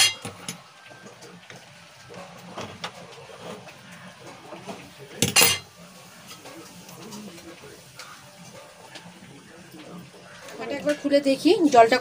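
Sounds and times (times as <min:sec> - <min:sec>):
soft kitchen sounds: 0:00.0 - 0:12.0.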